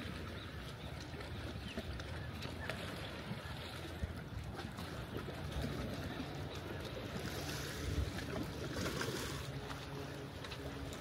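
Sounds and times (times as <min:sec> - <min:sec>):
water lapping against rocks: 0:00.0 - 0:11.0
wind: 0:00.0 - 0:11.0.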